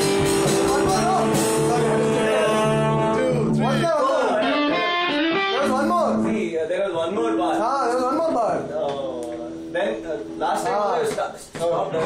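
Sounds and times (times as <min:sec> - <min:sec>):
small band playing: 0:00.0 - 0:12.0
men's voices: 0:00.4 - 0:05.0
alto saxophone long notes: 0:01.2 - 0:03.5.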